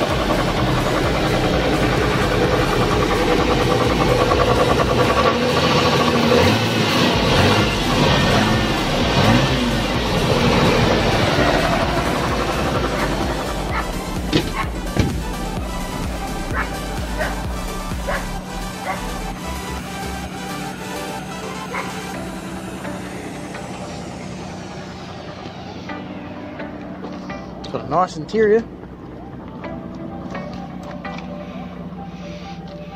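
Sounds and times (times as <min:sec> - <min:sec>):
car engine revving: 0:00.0 - 0:32.7
music: 0:00.0 - 0:32.9.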